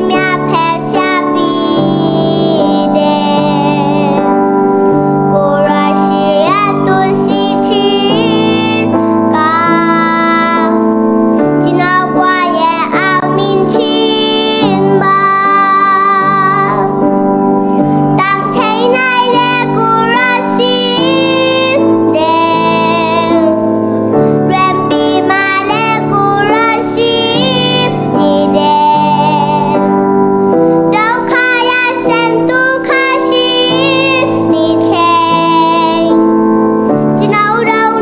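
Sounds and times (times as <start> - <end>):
girl singing: 0.0 - 38.0
keyboard playing held chords: 0.0 - 38.0.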